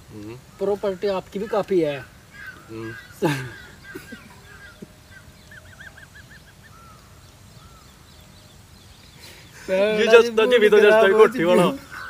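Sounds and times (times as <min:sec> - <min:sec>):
bird calling: 0:00.0 - 0:12.0
quiet rural background: 0:00.0 - 0:12.0.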